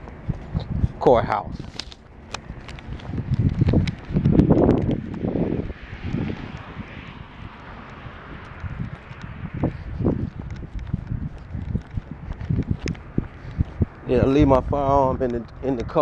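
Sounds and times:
clothing rubbing on microphone: 0.0 - 14.6
footsteps: 0.0 - 14.7
scattered clicks: 1.6 - 5.3, 6.0 - 6.8, 7.6 - 14.0, 15.2 - 15.7.

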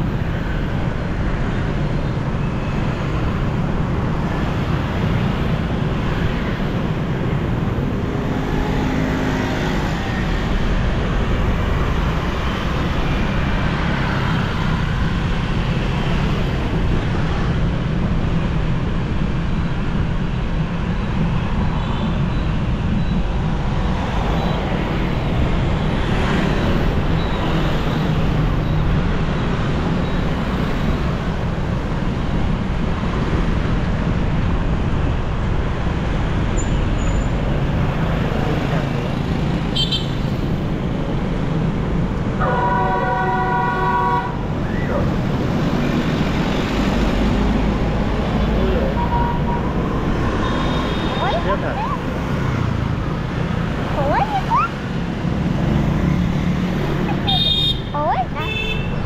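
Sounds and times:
street traffic rumble: 0.0 - 59.0
vehicle horn: 42.4 - 44.4, 57.3 - 59.0.

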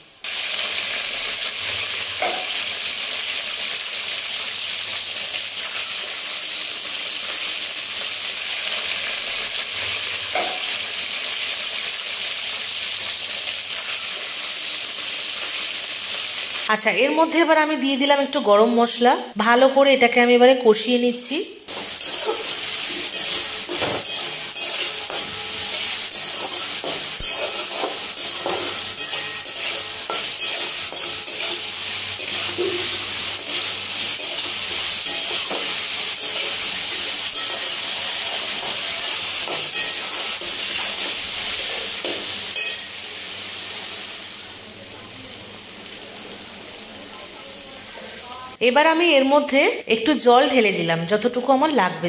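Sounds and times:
vegetables sizzling in oil: 0.0 - 51.8
spatula scraping metal pan: 21.7 - 42.9.

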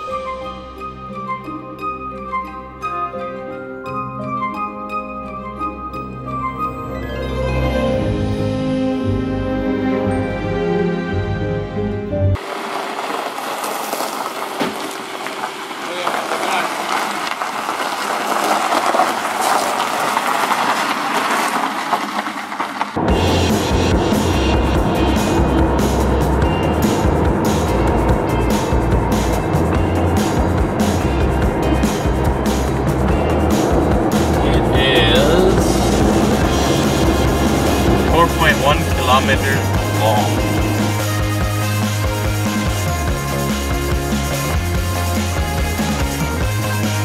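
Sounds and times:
deep engine rumble: 11.8 - 47.0
road noise hiss: 12.4 - 47.0.

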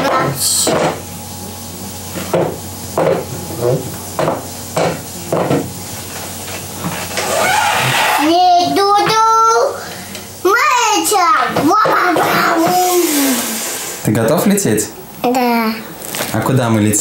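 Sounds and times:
child calling out: 7.4 - 9.8, 10.4 - 13.4.

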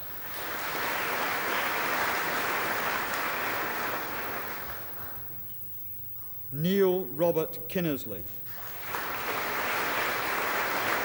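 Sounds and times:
audience applauding: 0.0 - 5.4, 8.6 - 11.0.

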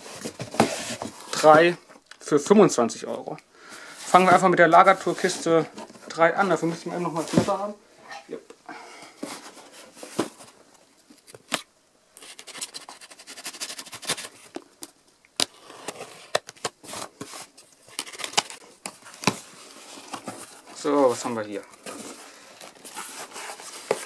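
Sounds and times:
cardboard and tape rustling: 0.0 - 1.7, 4.0 - 7.8, 9.1 - 11.6, 12.2 - 24.0.

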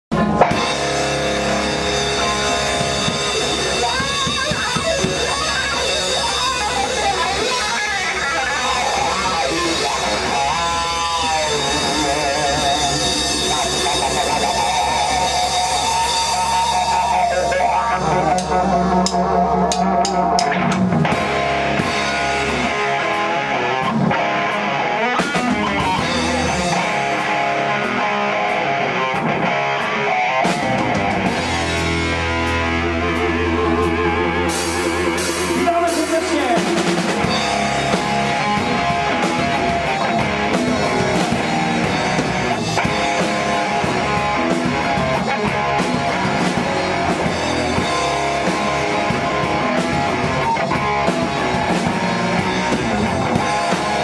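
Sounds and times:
bass guitar: 0.0 - 54.0
drum kit: 0.1 - 54.0
electric guitar lead: 0.1 - 54.0.

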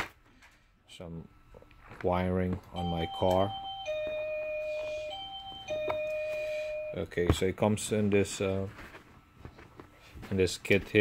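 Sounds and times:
electronic doorbell ding-dong: 2.8 - 7.1.

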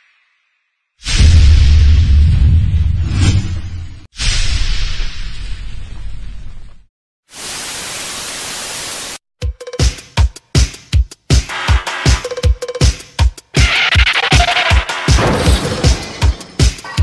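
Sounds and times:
static noise burst: 7.3 - 9.2.

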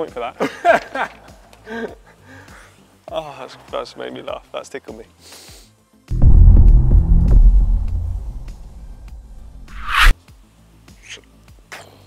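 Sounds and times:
deep bass boom: 6.1 - 10.1.

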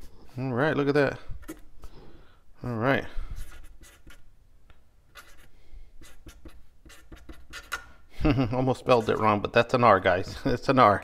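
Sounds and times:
marker scratching on wood: 3.4 - 4.3, 5.1 - 7.9, 8.8 - 9.4.

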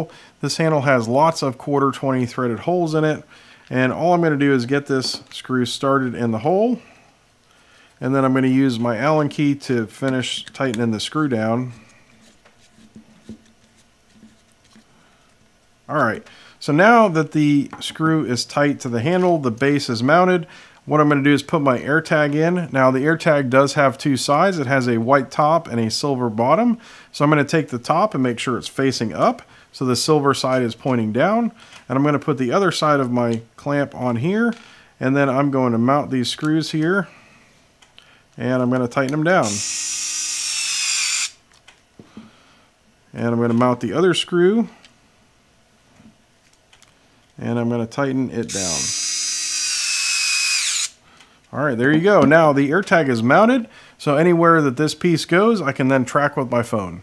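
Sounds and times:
electric screwdriver whining: 39.4 - 41.4, 48.5 - 51.0.

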